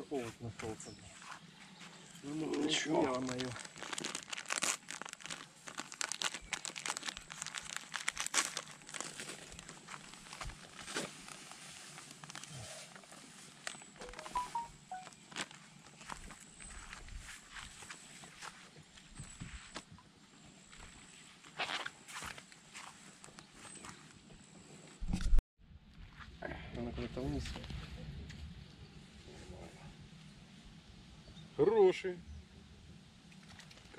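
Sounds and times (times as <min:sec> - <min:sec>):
plastic crinkling: 0:02.6 - 0:17.0.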